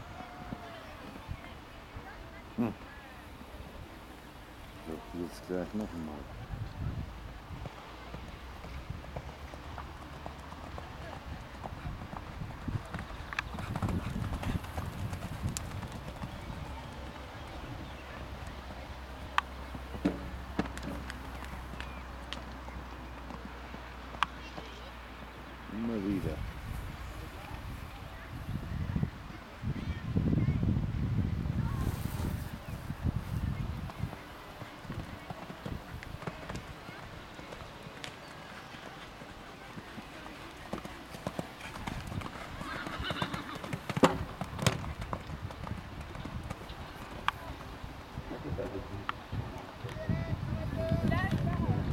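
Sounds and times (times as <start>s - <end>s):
horse hoofbeats on sand: 7.6s - 24.8s.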